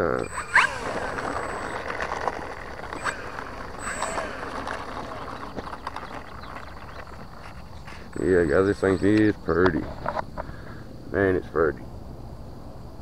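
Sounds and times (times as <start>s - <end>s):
model plane electric motor whine: 0.0s - 8.7s.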